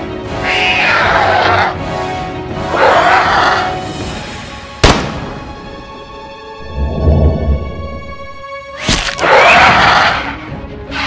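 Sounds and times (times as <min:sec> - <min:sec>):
background music: 0:00.0 - 0:11.0
dinosaur cry: 0:00.3 - 0:01.8
pistol gunshot: 0:04.8 - 0:05.3.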